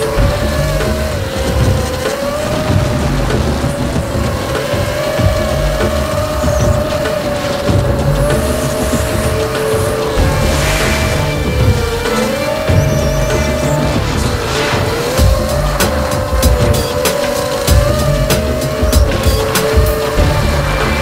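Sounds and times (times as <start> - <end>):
drone motors whining: 0.0 - 21.0
music with bass beat: 0.0 - 21.0.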